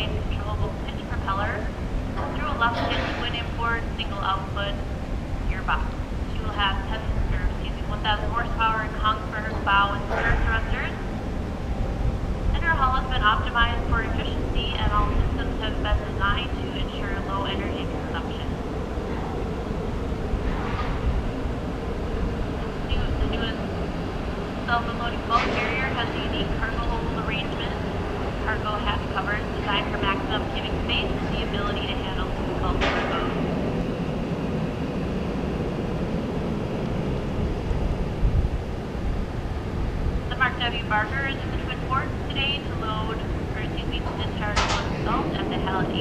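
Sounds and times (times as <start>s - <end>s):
steady low rumble: 0.0s - 46.0s
wind buffeting microphone: 0.0s - 46.0s.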